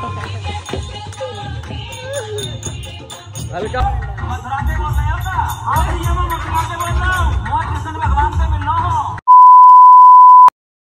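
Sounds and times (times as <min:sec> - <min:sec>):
hand-drum music with voices: 0:00.0 - 0:09.2
loud high electronic beep: 0:09.3 - 0:10.5.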